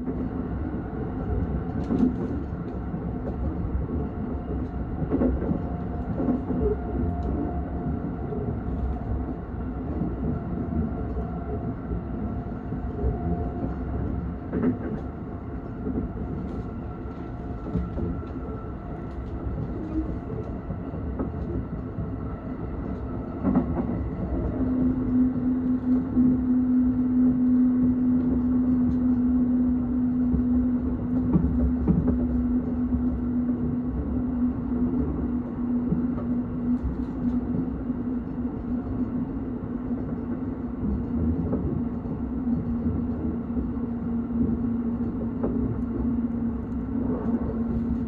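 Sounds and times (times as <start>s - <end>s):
train wheels rumbling on track: 0.0s - 48.0s.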